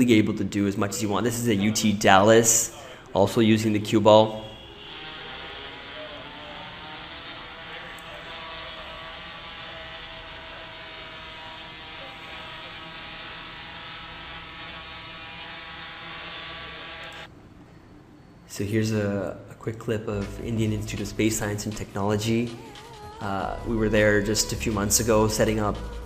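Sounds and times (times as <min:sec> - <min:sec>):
quadrotor propellers buzzing: 0:04.5 - 0:17.3.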